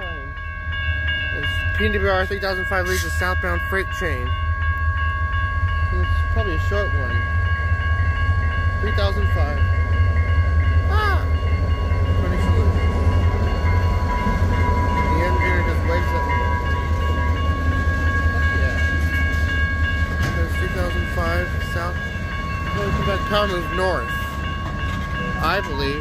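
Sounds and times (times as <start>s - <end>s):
diesel locomotive rumbling: 0.0s - 26.0s
high-pitched ringing tones: 0.0s - 26.0s.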